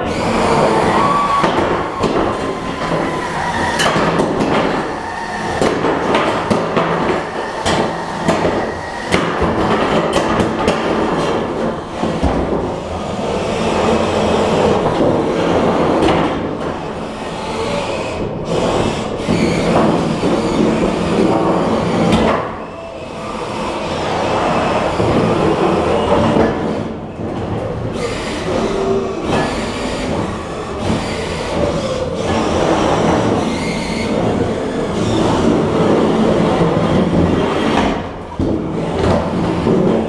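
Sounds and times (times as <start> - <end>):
crowd noise: 0.0 - 40.0.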